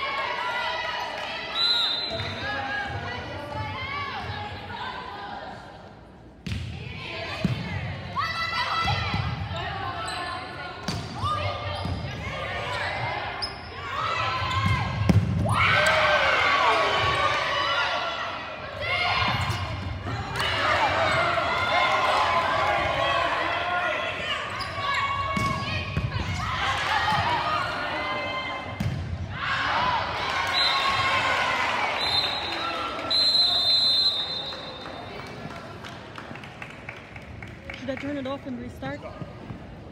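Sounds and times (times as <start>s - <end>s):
people shouting and cheering: 11.2s - 35.8s.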